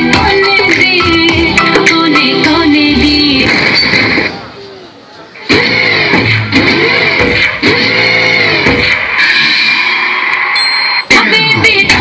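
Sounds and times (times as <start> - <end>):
dance music over loudspeakers: 0.0 - 4.4, 5.4 - 12.0.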